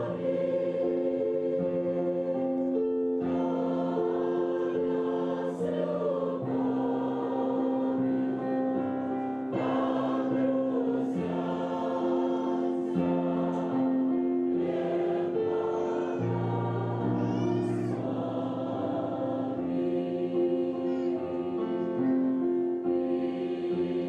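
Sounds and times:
choir singing a slow hymn: 0.0s - 24.0s
keyboard accompaniment: 0.0s - 24.0s.

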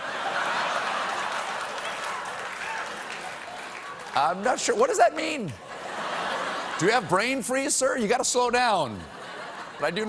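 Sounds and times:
audience laughing: 0.0s - 2.4s, 4.5s - 10.0s
audience applauding: 0.0s - 6.6s.

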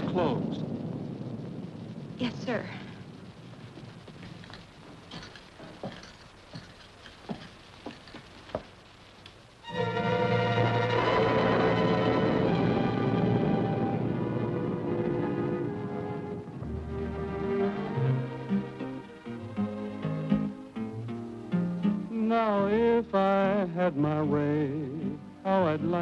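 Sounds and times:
orchestral strings playing chords: 9.6s - 23.4s.

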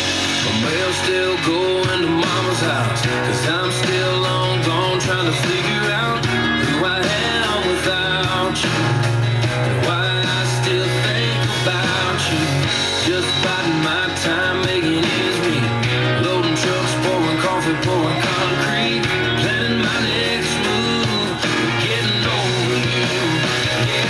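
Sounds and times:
country song on radio: 0.0s - 24.0s.

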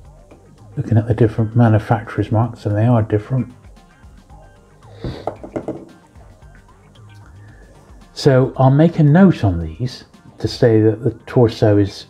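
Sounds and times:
quiet background music: 0.0s - 12.0s
plastic figures knocking on table: 5.0s - 6.0s.

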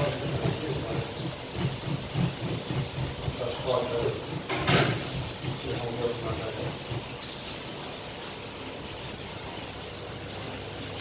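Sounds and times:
plastic kitchen gadget grinding: 0.0s - 7.1s.

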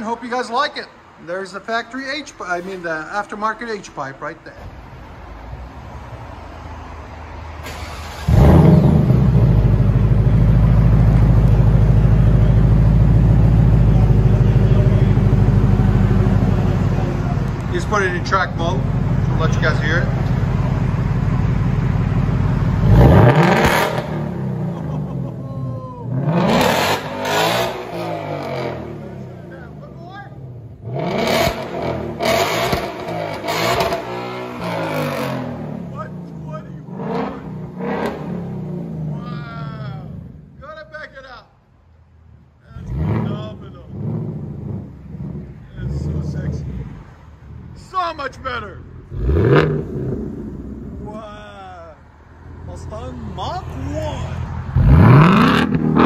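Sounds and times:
vee eight engine idling and revving: 7.0s - 40.6s, 42.3s - 56.0s.

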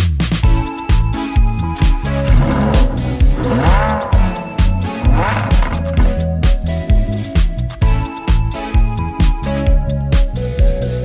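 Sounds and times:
background music with beat: 0.0s - 11.0s
car engine revving: 1.7s - 6.8s.

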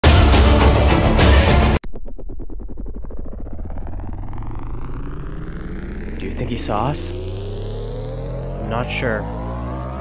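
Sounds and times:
steady low hum: 1.8s - 9.8s
rapidly pulsing synth tone: 1.8s - 10.0s.

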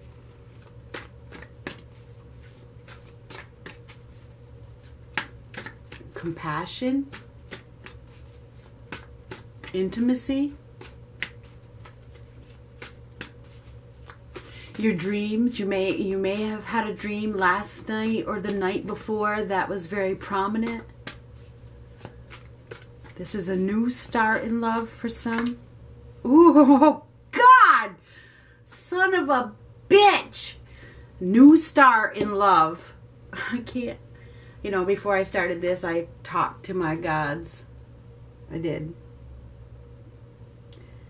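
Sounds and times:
cards being shuffled: 0.0s - 19.1s, 20.0s - 25.6s
low room hum: 0.0s - 41.0s.

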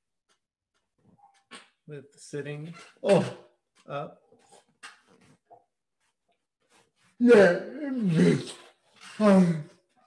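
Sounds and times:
man straining to speak: 7.2s - 9.6s.

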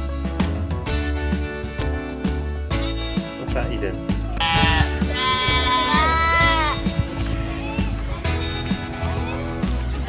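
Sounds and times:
background music with beat: 0.0s - 10.0s
goat bleating: 4.3s - 6.9s.

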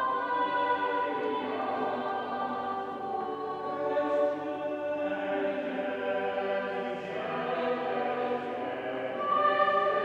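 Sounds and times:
choir singing harmony: 0.0s - 10.0s.

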